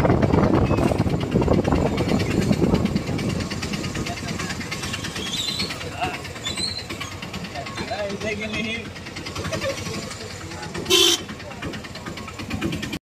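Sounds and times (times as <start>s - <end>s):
vehicle horn toot: 10.9s - 11.3s.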